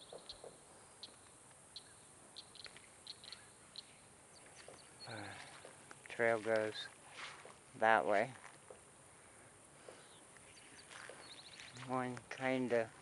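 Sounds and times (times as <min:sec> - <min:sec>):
bird trill: 0:00.0 - 0:05.7, 0:10.0 - 0:11.8
small bird chirping: 0:00.0 - 0:05.8, 0:09.9 - 0:12.0
background hiss: 0:00.0 - 0:13.0.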